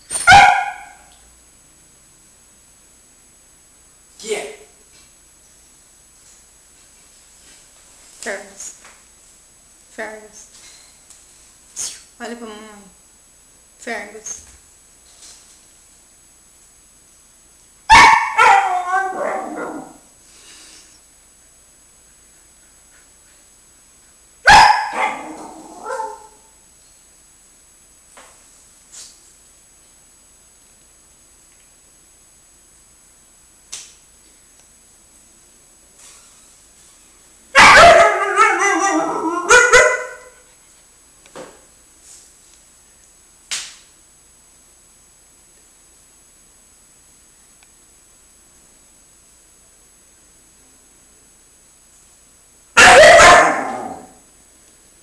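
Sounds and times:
dog barking loudly: 0.2s - 1.1s, 17.9s - 20.0s, 24.4s - 26.4s, 37.6s - 40.4s, 52.8s - 54.2s.

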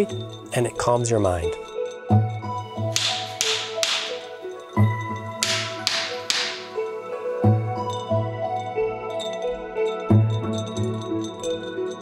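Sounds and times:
soft background music: 0.0s - 12.0s
wooden stick slapping shoulders: 2.8s - 7.1s.

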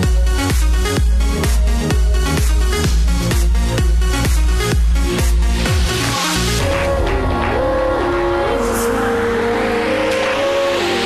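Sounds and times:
bass: 0.0s - 11.0s
rising noise sweep: 5.4s - 11.0s
synth melody sliding between notes: 6.4s - 11.0s.

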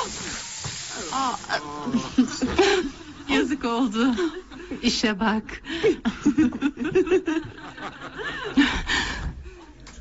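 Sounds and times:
champagne hissing and foaming: 0.0s - 4.7s.

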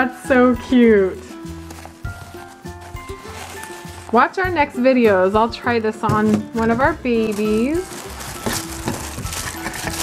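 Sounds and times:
soft background music: 0.0s - 10.0s
tissue paper rustling and crinkling: 0.2s - 10.0s.

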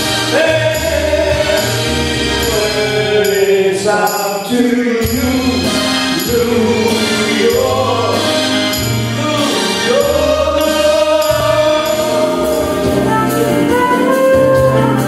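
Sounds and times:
low bass notes: 0.0s - 4.0s, 5.0s - 15.0s
keyboard: 0.0s - 15.0s
tambourine: 0.0s - 15.0s.

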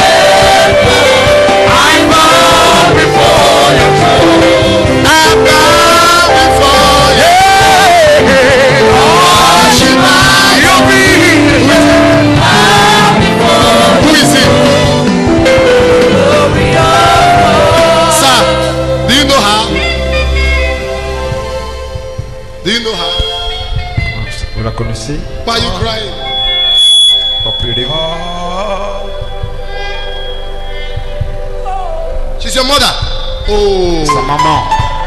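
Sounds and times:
gospel choir singing: 0.0s - 33.4s
microphone feedback squeal: 22.2s - 35.0s.

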